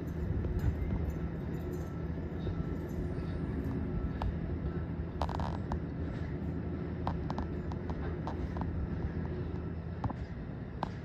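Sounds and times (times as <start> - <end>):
distant vehicles rumbling: 0.0 - 11.0.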